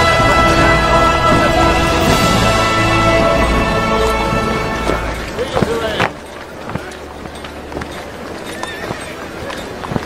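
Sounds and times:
crowd voices: 0:00.0 - 0:10.0
horse hooves clopping on stone: 0:00.0 - 0:10.0.

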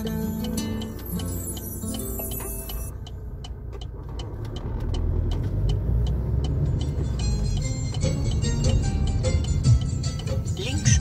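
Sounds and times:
song playing: 0:00.0 - 0:03.0, 0:06.6 - 0:11.0
car engine and road rumble: 0:00.0 - 0:11.0
light steady ticking: 0:00.0 - 0:11.0.

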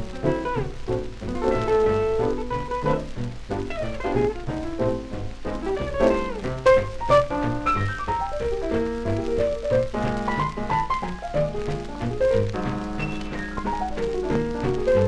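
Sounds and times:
swing jazz band playing: 0:00.0 - 0:15.0.

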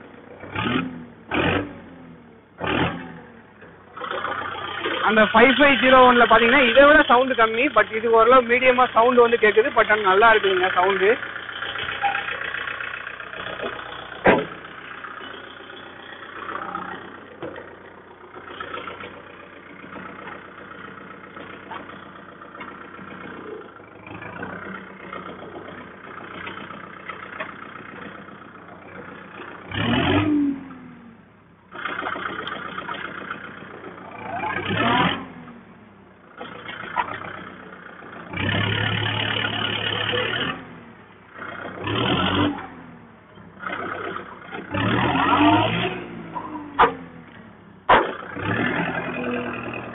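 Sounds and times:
tractor diesel engine: 0:00.0 - 0:49.9.

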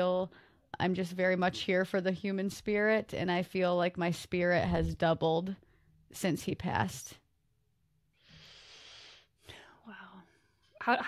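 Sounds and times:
woman speaking: 0:00.0 - 0:05.6
woman breathing: 0:08.1 - 0:10.8.

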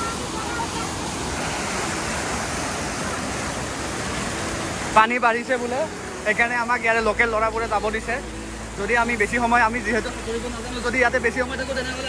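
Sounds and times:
water rushing down a weir: 0:00.0 - 0:12.0.

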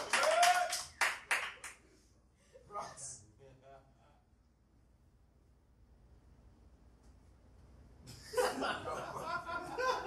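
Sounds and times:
audience applause: 0:00.0 - 0:01.8.

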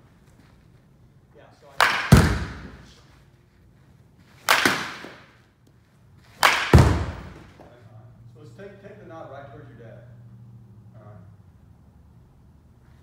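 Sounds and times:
baseball bat cracking ball: 0:01.7 - 0:03.0, 0:04.3 - 0:05.5, 0:06.2 - 0:07.7.

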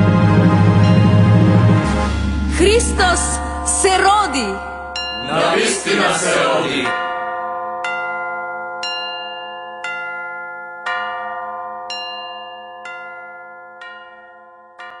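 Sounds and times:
tuned bells ringing: 0:02.1 - 0:06.1, 0:06.8 - 0:15.0.

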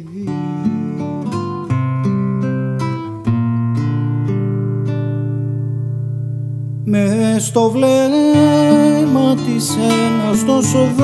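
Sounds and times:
fingerpicked classical guitar: 0:00.0 - 0:11.0.

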